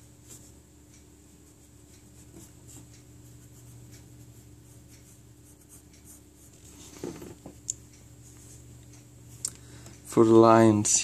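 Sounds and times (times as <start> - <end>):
pencil scratching on paper: 1.6 - 6.9.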